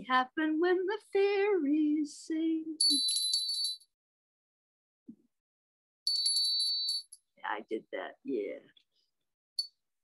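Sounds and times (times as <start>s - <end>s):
small bells tinkling: 2.8s - 4.0s, 6.1s - 7.2s.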